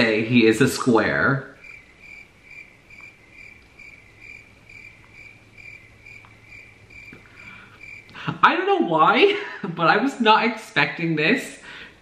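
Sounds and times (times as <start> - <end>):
cricket chirping: 0.0 - 8.4
faint low hum: 0.0 - 12.0.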